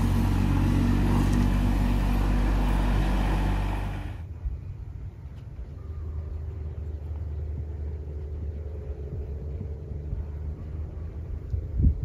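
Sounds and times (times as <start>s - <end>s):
vehicle engine running: 0.0s - 4.3s, 5.5s - 12.0s.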